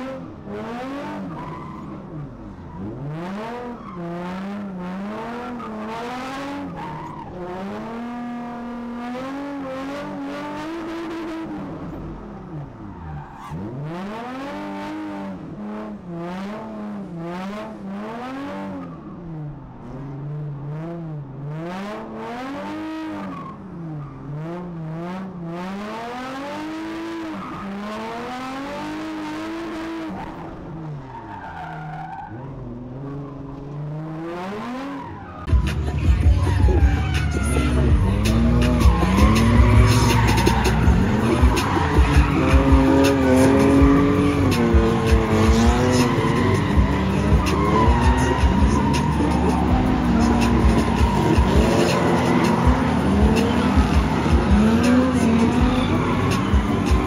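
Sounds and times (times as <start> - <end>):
car engine revving: 0.0 - 57.0
tyres skidding: 0.0 - 57.0.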